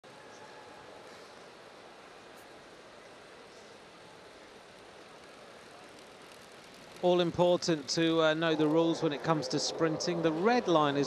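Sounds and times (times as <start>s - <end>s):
indoor arena background noise: 0.0s - 11.0s.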